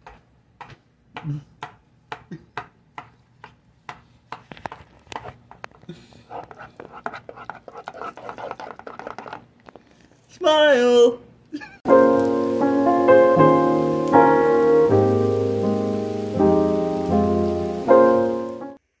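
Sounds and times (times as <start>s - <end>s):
potato masher knocking in pot: 6.3s - 9.5s.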